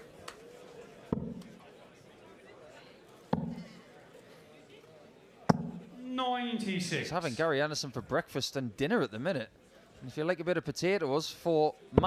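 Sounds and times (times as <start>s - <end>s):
faint background murmur: 0.0s - 12.0s
darts thudding into dartboard: 5.5s - 5.8s.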